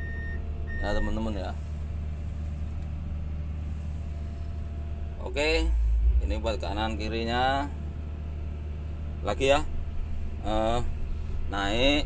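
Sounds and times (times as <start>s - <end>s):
faint steady tones: 0.0s - 2.9s
excavator diesel engine humming: 0.0s - 12.0s.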